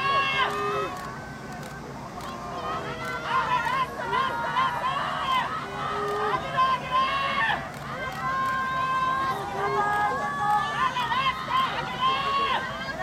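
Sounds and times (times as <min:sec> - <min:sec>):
people shouting encouragement: 0:00.0 - 0:13.0.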